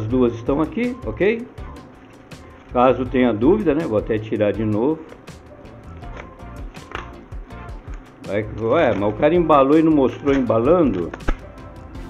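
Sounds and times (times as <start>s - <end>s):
soft background music: 0.0s - 12.0s
bubble wrap crackling: 5.1s - 11.6s.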